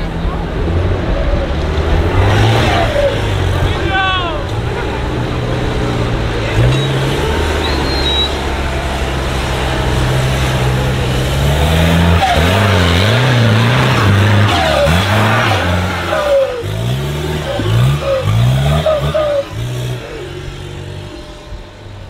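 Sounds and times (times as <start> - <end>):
truck engine revving: 0.0 - 22.0.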